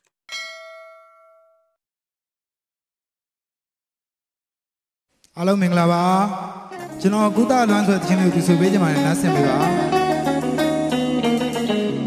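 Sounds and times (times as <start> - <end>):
bell ding: 0.3 - 1.8.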